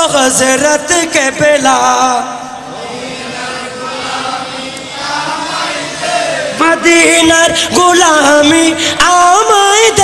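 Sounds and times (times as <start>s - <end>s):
men chanting together: 2.6s - 7.7s.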